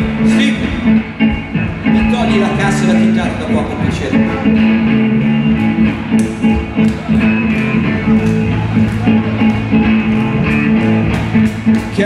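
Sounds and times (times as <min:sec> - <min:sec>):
electric guitars: 0:00.0 - 0:12.0.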